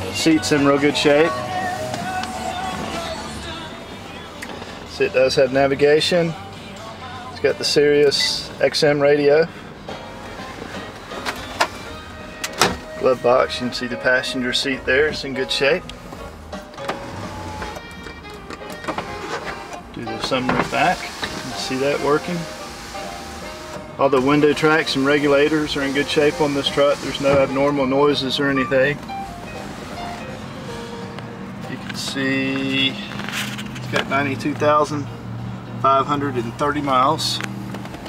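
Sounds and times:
faint music with held notes: 0.0 - 38.0
glove box latch clicking: 12.4 - 12.8.

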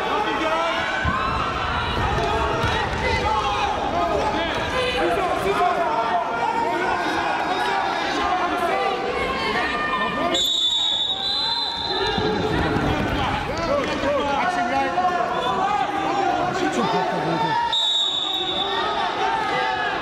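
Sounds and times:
crowd calling out and chattering: 0.0 - 20.0
high whistle tone: 10.3 - 12.1, 17.7 - 18.8.

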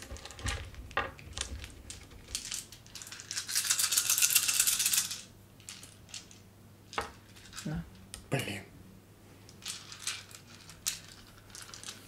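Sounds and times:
plastic tokens rattling: 1.3 - 6.4, 9.6 - 12.0.

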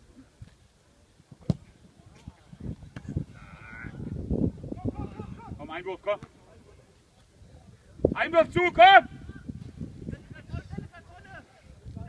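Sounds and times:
football kick thud: 1.3 - 1.8.

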